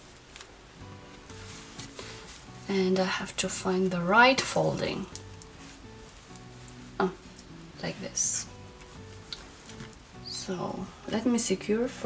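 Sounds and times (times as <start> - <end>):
fabric rustling: 0.0 - 3.1, 4.4 - 7.0, 8.5 - 10.2
soft music of slow held notes: 0.0 - 12.0.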